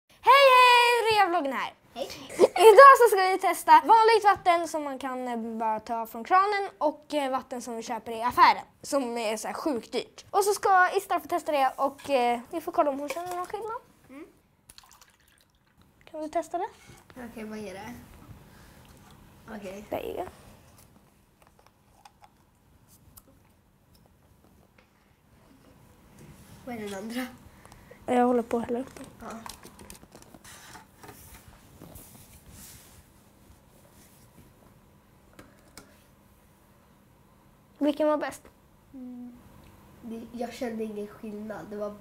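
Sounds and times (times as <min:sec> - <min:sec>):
water dripping: 0:14.7 - 0:16.2.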